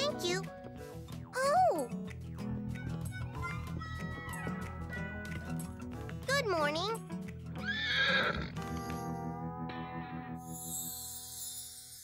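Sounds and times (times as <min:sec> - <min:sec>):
background music: 0:00.0 - 0:12.0
horse whinnying: 0:07.6 - 0:08.6.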